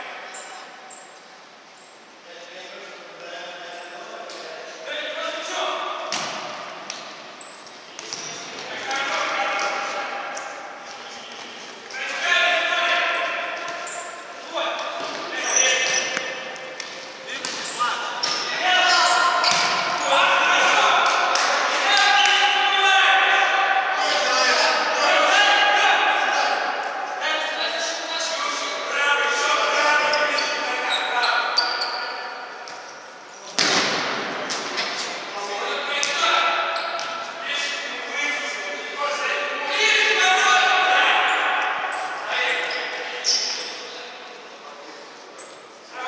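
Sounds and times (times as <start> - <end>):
players shouting: 11.9 - 31.5, 35.5 - 43.1.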